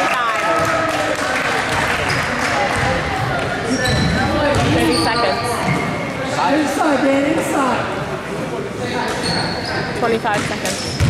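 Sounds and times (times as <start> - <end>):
spectators talking: 0.0 - 11.0
sneaker squeaks: 3.6 - 6.2, 8.9 - 11.0.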